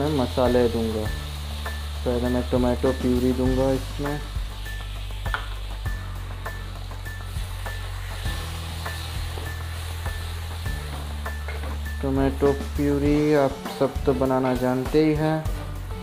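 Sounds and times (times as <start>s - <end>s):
food sizzling in frying pan: 0.0s - 16.0s.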